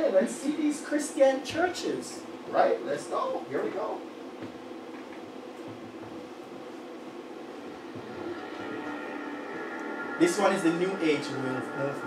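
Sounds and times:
steady low hum: 0:00.0 - 0:12.0
shimmering music chord: 0:07.7 - 0:12.0.

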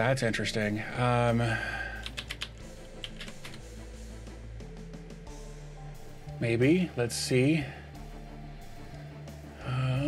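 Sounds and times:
computer keyboard keys clicking: 0:02.0 - 0:03.6.

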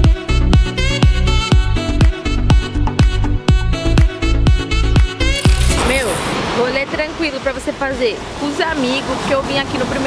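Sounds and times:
glitchy whoosh: 0:05.4 - 0:07.0
woman talking: 0:05.7 - 0:10.0.

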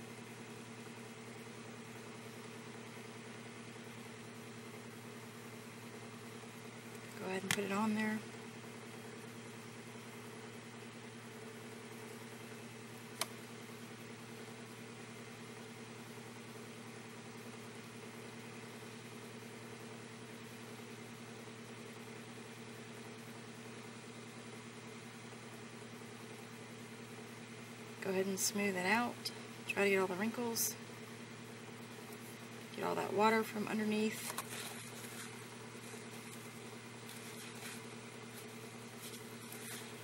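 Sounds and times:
low background hum: 0:00.0 - 0:40.0.

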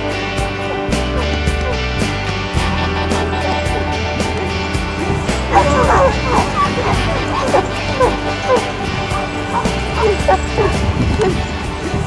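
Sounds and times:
background music: 0:00.0 - 0:12.0
dog barking and yipping: 0:01.2 - 0:01.8, 0:05.4 - 0:11.4.

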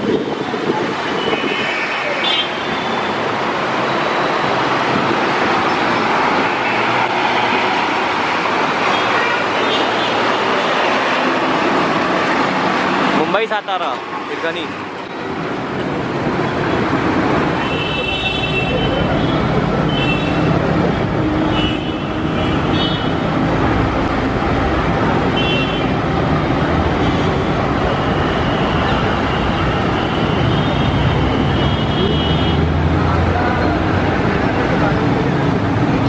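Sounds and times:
road traffic rumble: 0:00.0 - 0:36.0.

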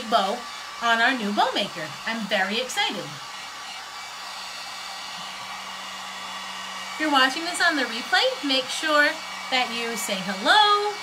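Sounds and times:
heat gun blowing air: 0:00.0 - 0:11.0.

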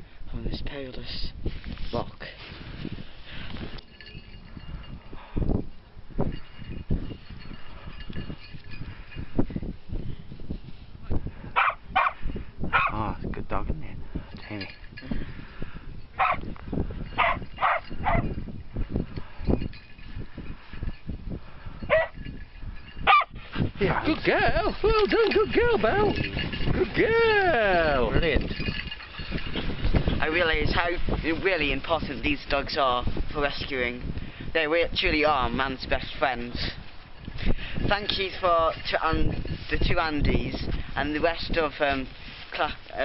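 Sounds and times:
wind buffeting microphone: 0:00.0 - 0:43.0
dog barking in short bursts: 0:11.6 - 0:12.2, 0:23.1 - 0:23.3.

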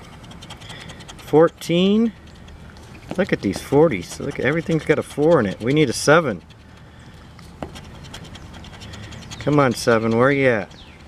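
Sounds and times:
scratcher scraping lottery ticket: 0:00.0 - 0:11.0.

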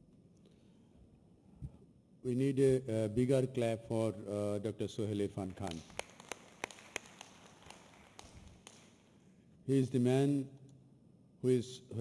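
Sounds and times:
scattered hand claps: 0:05.5 - 0:09.2
light hiss: 0:05.6 - 0:09.4.

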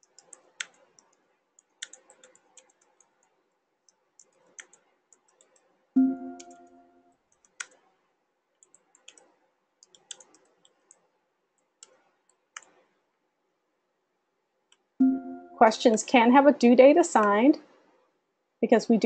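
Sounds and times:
computer keyboard typing: 0:00.0 - 0:07.9, 0:08.6 - 0:12.8.

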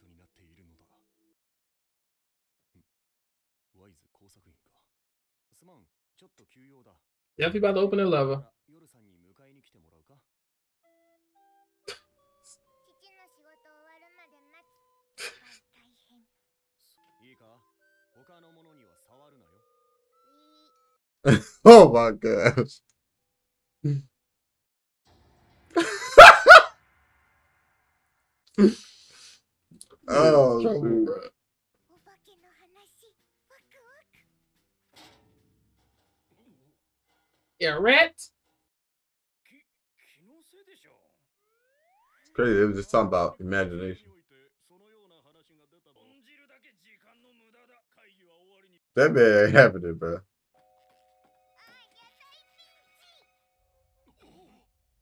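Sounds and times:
dog barking: 0:26.0 - 0:26.7.

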